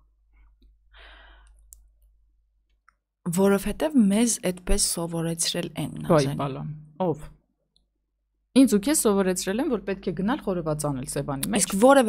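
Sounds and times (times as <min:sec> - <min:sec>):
breathy exhale: 0:01.0 - 0:01.6
woman speaking: 0:03.3 - 0:07.3, 0:08.6 - 0:12.0.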